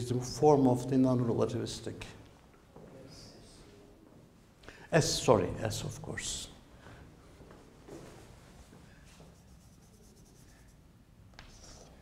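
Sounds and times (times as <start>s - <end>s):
chalk scratching on blackboard: 9.1s - 10.8s, 11.4s - 12.0s.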